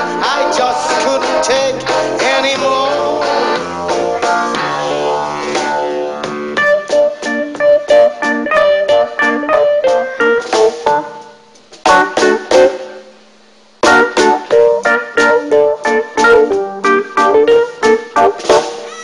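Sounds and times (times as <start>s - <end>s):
rock band playing: 0.0s - 12.8s, 13.8s - 18.9s.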